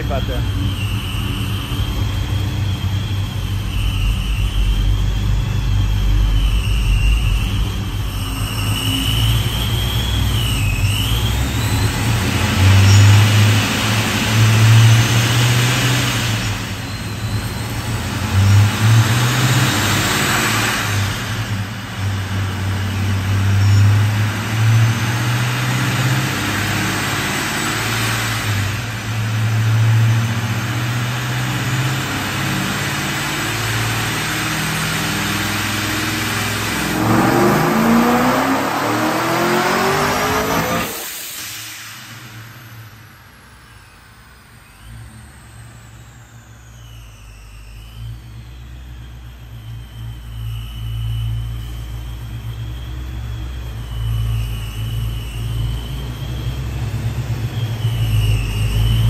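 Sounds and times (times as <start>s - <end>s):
car engine revving on dyno: 0.0s - 59.0s.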